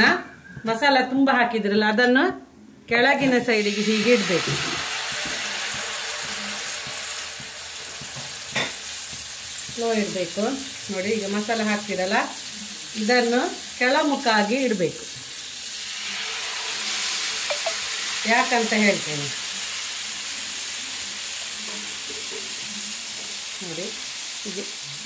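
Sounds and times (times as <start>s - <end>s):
fish sizzling in hot oil: 3.5s - 25.0s.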